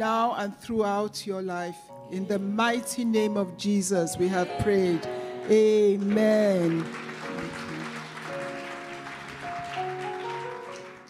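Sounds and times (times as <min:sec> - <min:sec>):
keyboard playing held chords: 0:01.9 - 0:11.0.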